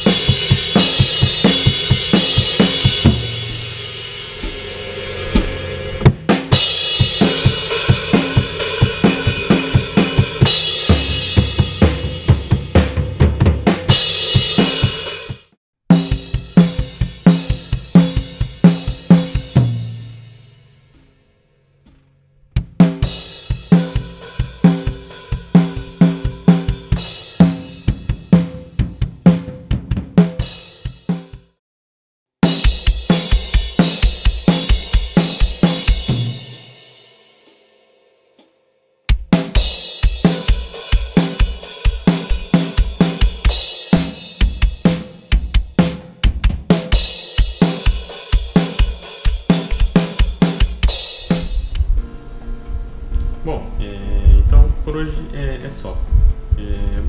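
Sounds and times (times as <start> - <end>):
drum kit playing a groove: 0.0 - 21.2, 21.8 - 31.6, 32.4 - 37.6, 38.4 - 52.2.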